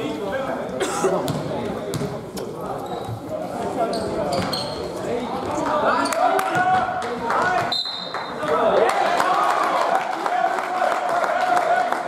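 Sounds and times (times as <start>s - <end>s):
voices chattering in echoing hall: 0.0s - 12.0s
basketball bouncing on gym floor: 1.3s - 2.2s.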